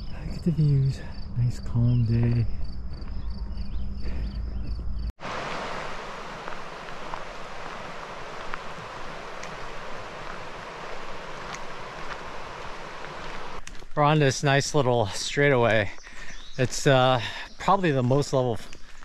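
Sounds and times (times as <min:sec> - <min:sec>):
river rushing over rocks: 0:05.2 - 0:13.6.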